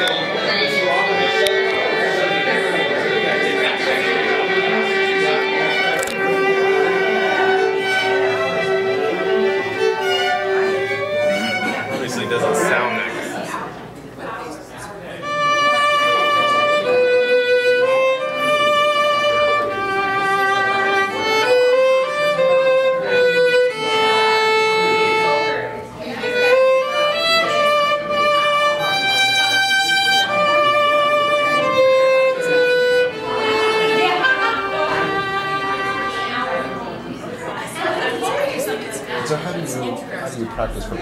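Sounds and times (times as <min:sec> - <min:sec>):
solo violin with vibrato: 0:00.0 - 0:12.6, 0:15.2 - 0:36.8.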